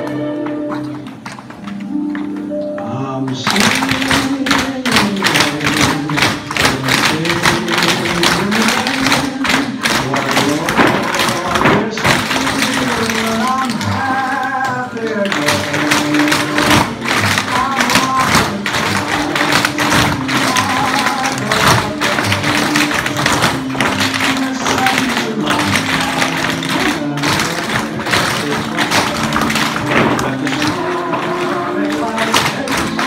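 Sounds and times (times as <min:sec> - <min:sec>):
recorded music: 0:00.0 - 0:33.0
tap shoes on wooden floor: 0:03.3 - 0:33.0.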